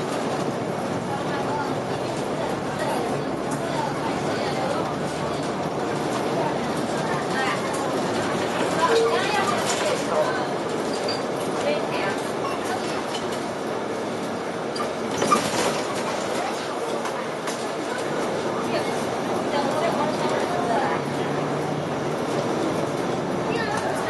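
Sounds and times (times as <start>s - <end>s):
bus engine and road noise: 0.0s - 24.0s
indistinct passenger voices: 0.0s - 24.0s.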